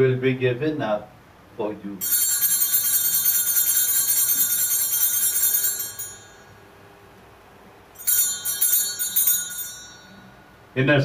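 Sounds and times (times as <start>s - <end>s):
altar bells jingling: 2.0s - 6.7s, 8.0s - 10.6s.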